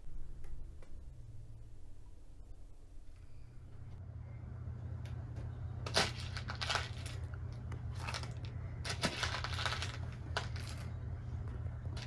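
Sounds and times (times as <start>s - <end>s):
dry beans rattling in plastic tub: 8.0s - 10.8s.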